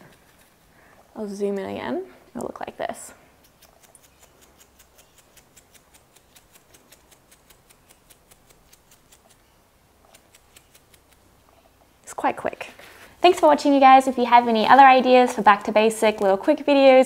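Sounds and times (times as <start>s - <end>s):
brush bristles flicking: 3.4s - 11.5s.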